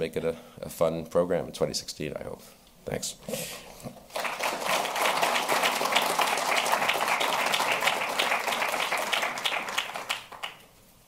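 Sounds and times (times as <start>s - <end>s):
audience applauding: 4.1s - 10.7s.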